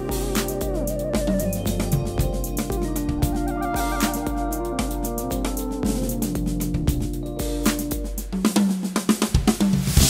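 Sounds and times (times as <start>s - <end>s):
bass guitar: 0.0s - 8.4s
keyboards: 0.0s - 9.6s
drum kit playing: 0.0s - 10.0s
snare and tom strokes: 0.1s - 10.0s.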